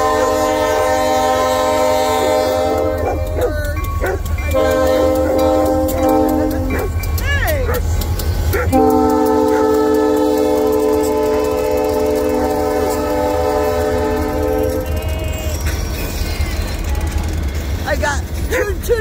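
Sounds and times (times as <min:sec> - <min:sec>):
locomotive horn chord: 0:00.0 - 0:07.2, 0:08.6 - 0:15.6
freight train rumbling past: 0:00.0 - 0:19.0.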